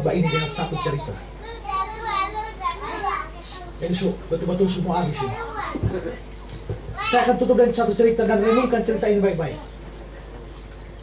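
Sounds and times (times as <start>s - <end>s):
children calling and chattering: 0.0s - 11.0s
man speaking: 3.8s - 5.4s, 7.1s - 9.7s.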